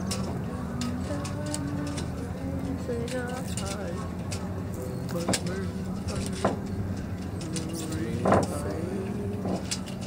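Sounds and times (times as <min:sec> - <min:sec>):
distant voices: 0:00.0 - 0:10.0
faint distant music: 0:00.0 - 0:10.0
steady low hum: 0:00.0 - 0:10.0.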